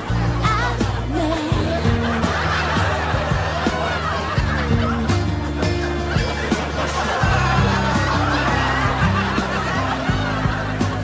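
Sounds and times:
slow pop ballad instrumental: 0:00.0 - 0:11.0
studio audience laughing: 0:00.0 - 0:11.0.

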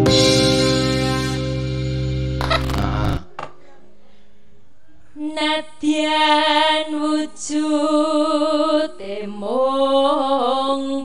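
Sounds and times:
loud sustained low chord: 0:00.0 - 0:03.2
short bright sound effect: 0:00.0 - 0:03.2.

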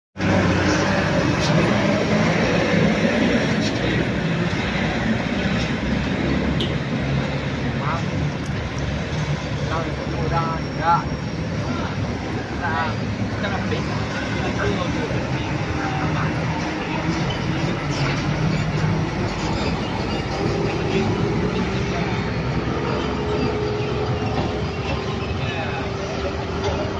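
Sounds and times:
trucks and cars engine drone: 0:00.2 - 0:26.9.

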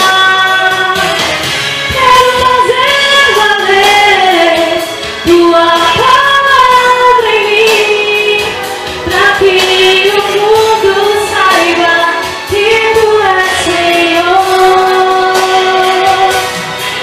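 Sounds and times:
backing music: 0:00.0 - 0:17.0
woman singing gospel song: 0:00.0 - 0:17.0.

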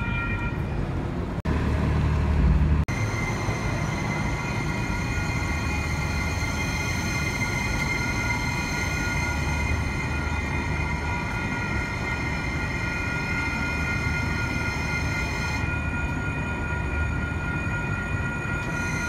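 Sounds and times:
train low rumble: 0:00.0 - 0:19.0
high-pitched whining tones: 0:02.9 - 0:19.0.

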